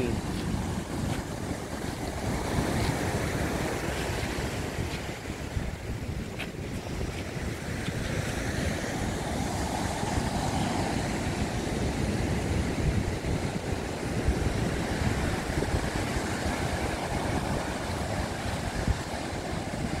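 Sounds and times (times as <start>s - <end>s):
ocean surf breaking: 0.0s - 20.0s
wind buffeting microphone: 0.0s - 20.0s.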